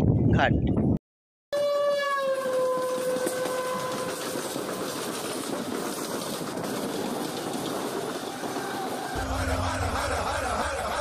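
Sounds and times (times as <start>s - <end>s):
train horn blast: 1.6s - 4.2s
train rumble and rail noise: 2.4s - 11.0s.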